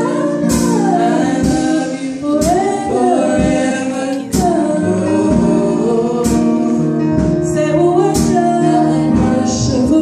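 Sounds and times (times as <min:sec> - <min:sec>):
low held accompaniment: 0:00.0 - 0:10.0
women's vocal group singing gospel: 0:00.0 - 0:10.0
steady beat of sharp strokes: 0:00.2 - 0:07.6.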